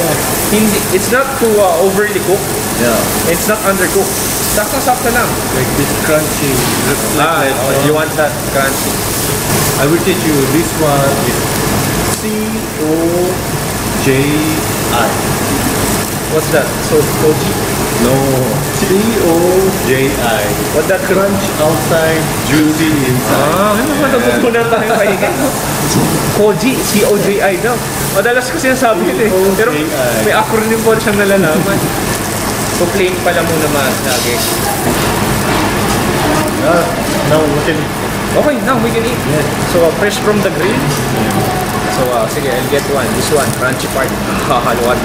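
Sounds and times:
meat sizzling on grill: 0.0s - 45.0s
ventilation fan humming: 0.0s - 45.0s
voices talking: 0.0s - 45.0s.

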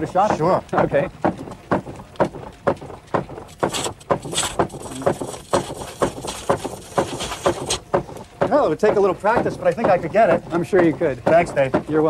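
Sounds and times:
rhythmic knocking: 0.0s - 12.0s.

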